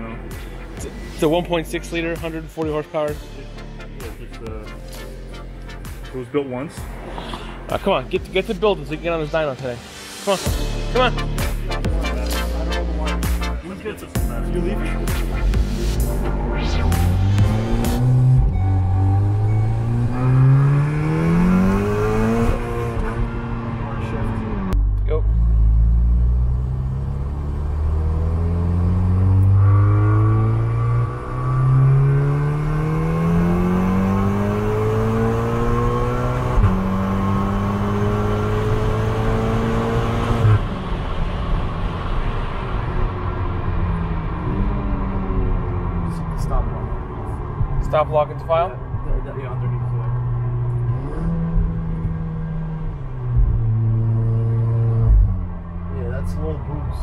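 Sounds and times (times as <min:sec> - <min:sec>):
car engine accelerating hard: 0:15.1 - 0:57.0.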